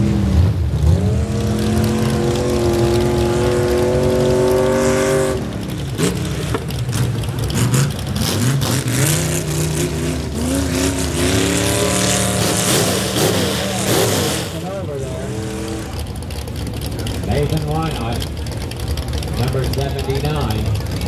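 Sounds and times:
truck engine revving: 0:00.0 - 0:21.0.

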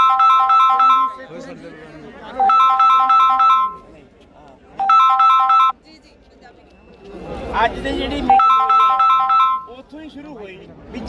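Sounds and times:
mobile phone ringtone: 0:00.0 - 0:01.3, 0:02.4 - 0:03.9, 0:04.8 - 0:05.8, 0:08.3 - 0:09.8.

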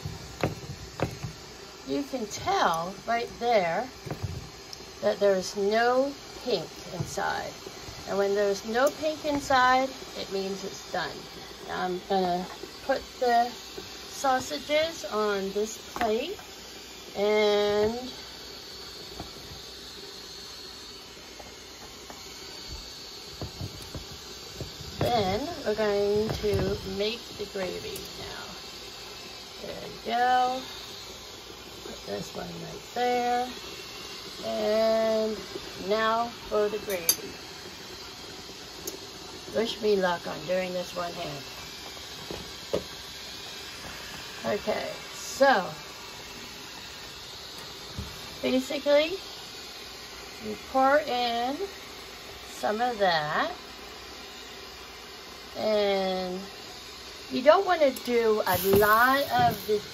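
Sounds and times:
sausages sizzling in a frying pan: 0:00.0 - 0:59.9.

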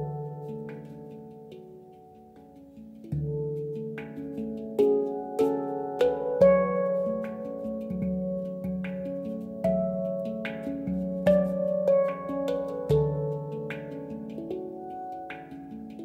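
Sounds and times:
handpan melody: 0:00.0 - 0:16.0.

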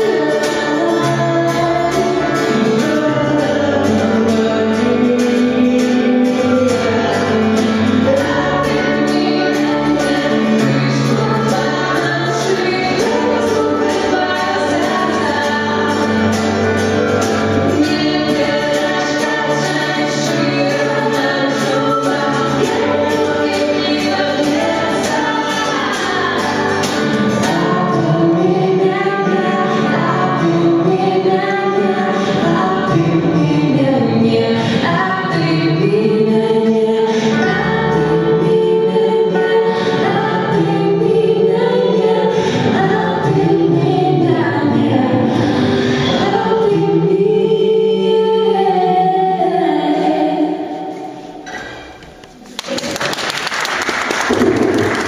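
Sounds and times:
man and woman singing together: 0:00.0 - 0:51.8
strummed acoustic guitar: 0:00.0 - 0:52.5, 0:54.1 - 0:55.0.

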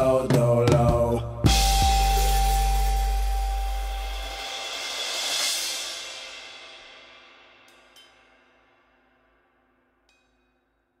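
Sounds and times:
cymbal ringing: 0:01.5 - 0:11.0.

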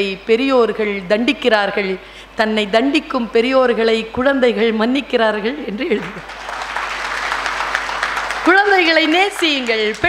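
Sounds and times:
woman's voice: 0:00.0 - 0:06.2, 0:08.5 - 0:10.0
audience applauding: 0:06.1 - 0:10.0.

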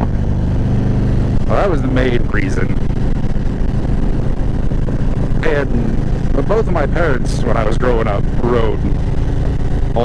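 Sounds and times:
motorcycle engine running: 0:00.0 - 0:10.0
road noise: 0:00.0 - 0:10.0
wind noise: 0:00.0 - 0:10.0.

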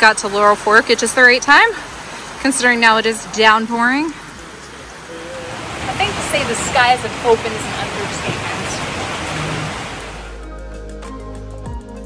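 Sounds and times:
heavy rain pouring: 0:00.0 - 0:10.5
background music with held tones: 0:10.1 - 0:12.0.

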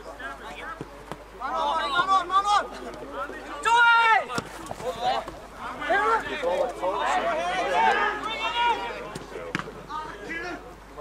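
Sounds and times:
men shouting: 0:04.9 - 0:09.1.

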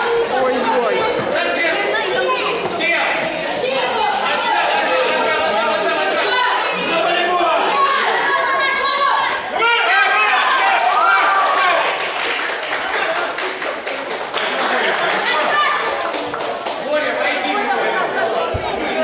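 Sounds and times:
voices chattering in echoing hall: 0:00.0 - 0:19.0.

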